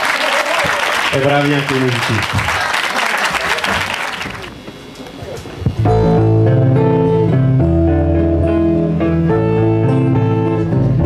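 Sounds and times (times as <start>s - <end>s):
guitar picking notes: 5.6s - 11.0s.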